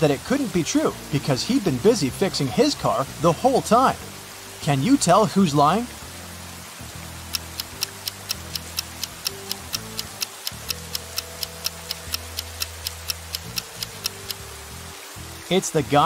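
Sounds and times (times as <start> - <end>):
soft background music: 0.0 - 16.0
clock-like ticking: 7.2 - 14.5.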